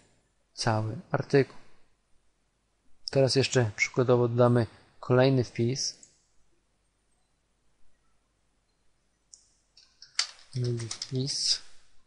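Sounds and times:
man speaking: 0:00.6 - 0:01.7, 0:03.1 - 0:06.0, 0:10.6 - 0:11.7
keyboard typing: 0:09.8 - 0:11.5.

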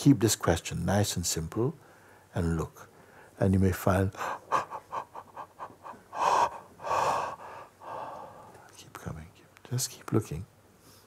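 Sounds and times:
man breathing heavily: 0:04.1 - 0:08.6.

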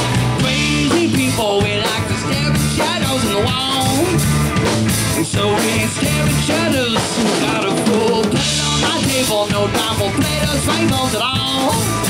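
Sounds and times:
drum kit beat: 0:00.0 - 0:12.0
electric guitars: 0:00.0 - 0:12.0
repeating bass line: 0:00.0 - 0:12.0
rock band playing: 0:00.0 - 0:12.0.

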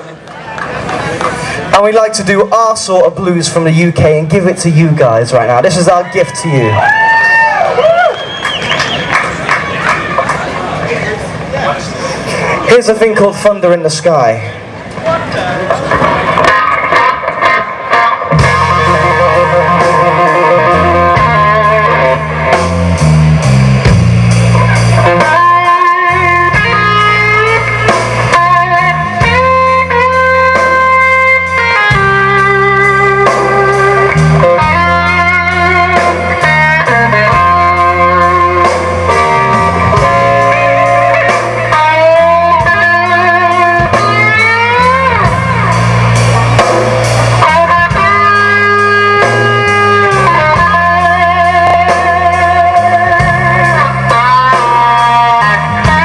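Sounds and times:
electric bass: 0:00.7 - 0:56.0
electric guitar lead with bends: 0:14.6 - 0:56.0
drum kit: 0:15.0 - 0:56.0.

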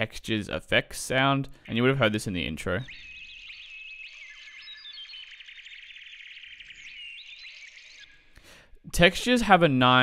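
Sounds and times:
small chirps and ticks: 0:01.5 - 0:09.3.

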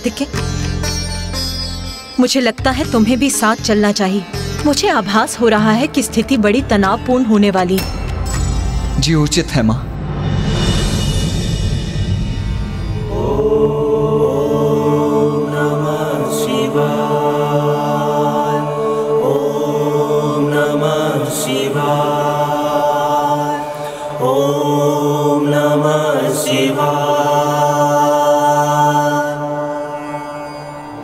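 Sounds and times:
steady low drone: 0:05.5 - 0:26.8
mantra chanted in sung phrases: 0:13.0 - 0:31.0.

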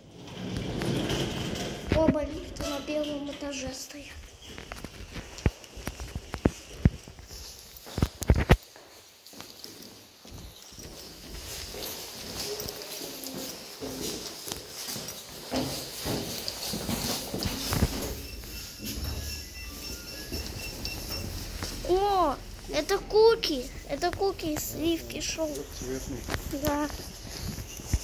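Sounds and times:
footsteps on tiled floor: 0:00.4 - 0:28.0
footsteps on concrete stairs: 0:04.3 - 0:22.8, 0:25.6 - 0:28.0.

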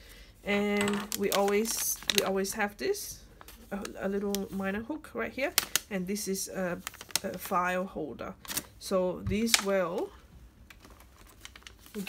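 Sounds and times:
plastic and paper pouch rustling: 0:00.0 - 0:07.8, 0:08.4 - 0:12.0.

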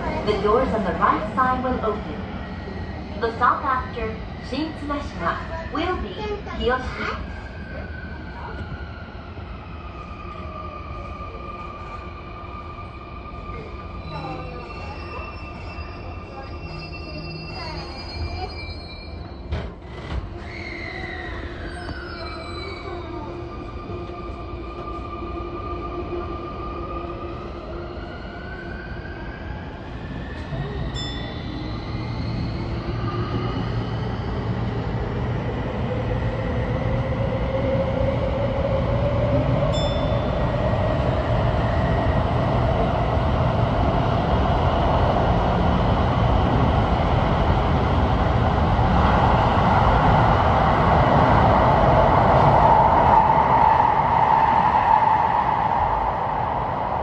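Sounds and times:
train wheels rolling on track: 0:29.5 - 0:57.0.

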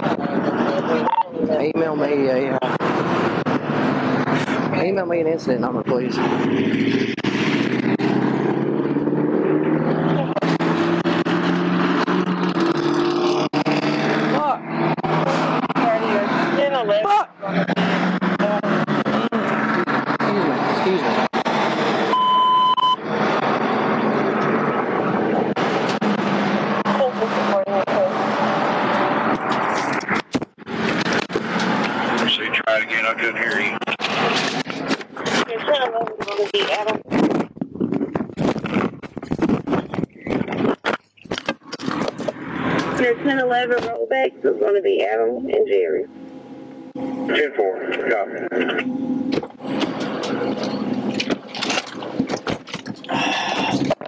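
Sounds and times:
electronic beep: 0:01.0 - 0:01.3, 0:22.1 - 0:23.0.

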